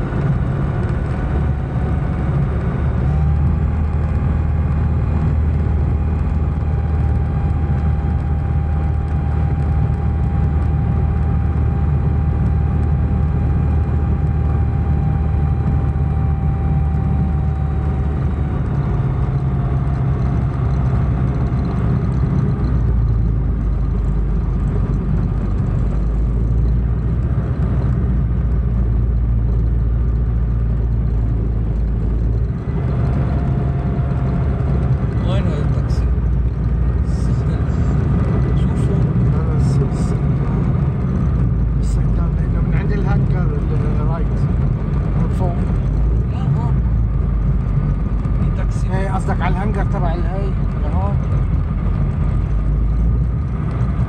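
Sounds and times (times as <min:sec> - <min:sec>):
aircraft engine drone: 0:00.0 - 0:54.0.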